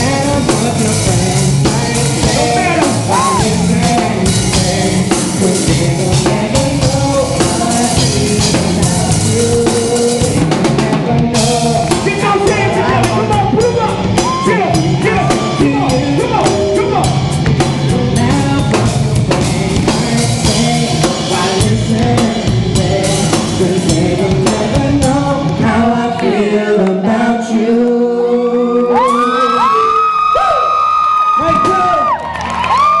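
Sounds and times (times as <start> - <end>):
drum beat: 0.0 - 26.1
person singing: 0.0 - 30.7.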